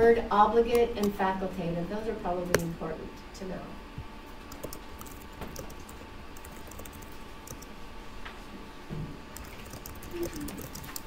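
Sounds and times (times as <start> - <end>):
faint steady hum: 0.0 - 11.0
computer keyboard typing: 4.5 - 7.7, 9.3 - 11.0.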